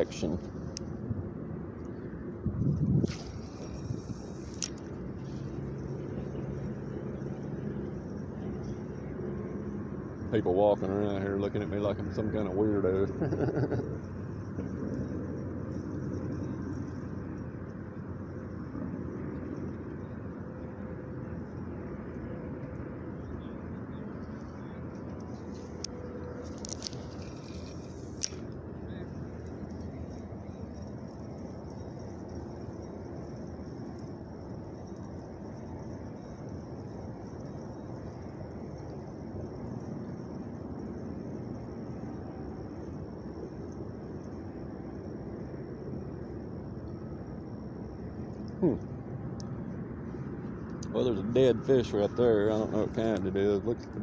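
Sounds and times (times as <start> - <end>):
low outdoor rumble: 0.0 - 54.0
man laughing: 13.1 - 14.0.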